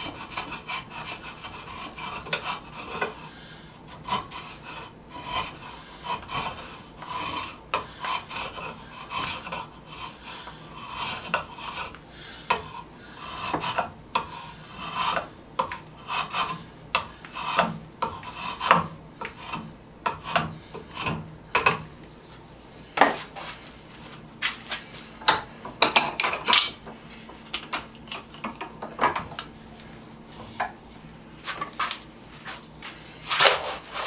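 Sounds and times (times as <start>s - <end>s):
draw knife scraping wood: 0.0s - 3.2s, 3.9s - 21.8s.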